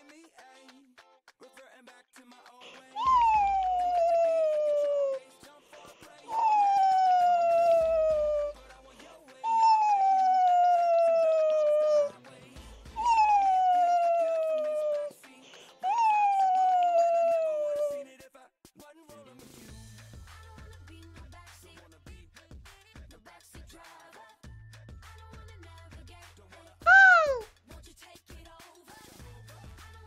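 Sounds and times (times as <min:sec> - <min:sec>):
descending whistle tones: 0:03.0 - 0:05.2, 0:06.2 - 0:08.5, 0:09.4 - 0:12.1, 0:13.0 - 0:15.0, 0:15.8 - 0:17.9.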